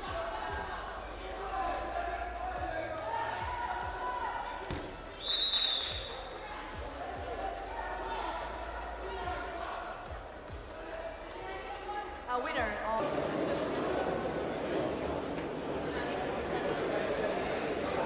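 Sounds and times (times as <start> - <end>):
people shouting: 0.0 - 6.4
referee's whistle blast: 5.2 - 6.2.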